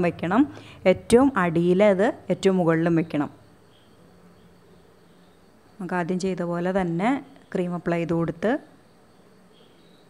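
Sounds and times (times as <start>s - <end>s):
woman speaking: 0.0s - 3.4s, 5.8s - 8.7s.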